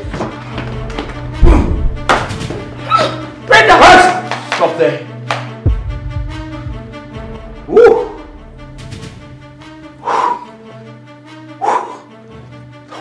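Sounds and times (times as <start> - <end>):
background music: 0.0 - 13.0
dog barking: 11.6 - 12.1.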